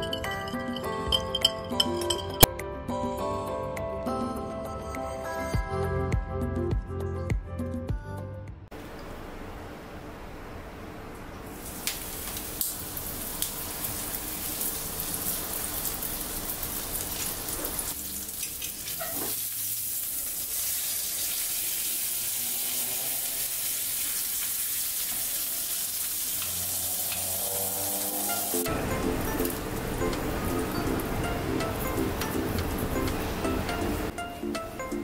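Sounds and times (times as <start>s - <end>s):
cutlet sizzling in oil: 11.5s - 31.1s.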